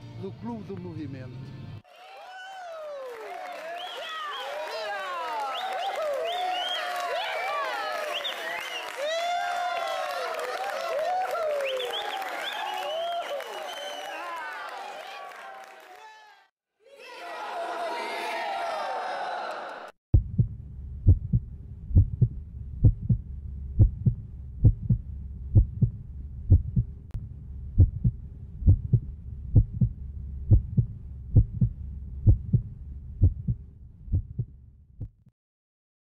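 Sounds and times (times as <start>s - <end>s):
group shouting together: 14.2s - 19.9s
heartbeat sound effect: 20.2s - 35.3s.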